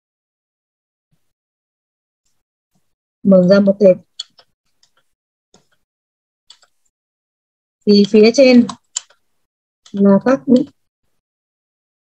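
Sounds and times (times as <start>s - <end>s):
computer keyboard typing: 6.5s - 6.8s, 7.9s - 10.8s.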